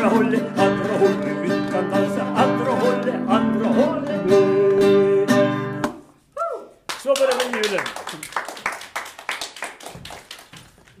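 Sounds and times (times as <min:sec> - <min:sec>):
small audience clapping: 0:06.8 - 0:11.0.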